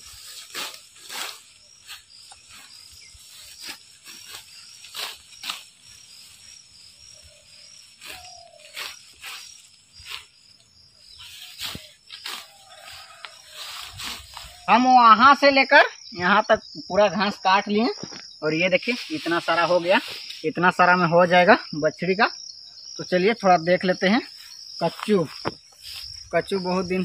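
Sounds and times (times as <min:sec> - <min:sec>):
sickle slicing grass: 0:00.0 - 0:06.5, 0:07.8 - 0:10.4, 0:11.2 - 0:14.7
grass rustling: 0:00.0 - 0:15.5, 0:17.2 - 0:21.8, 0:23.1 - 0:27.0
crickets shrilling: 0:00.0 - 0:27.0.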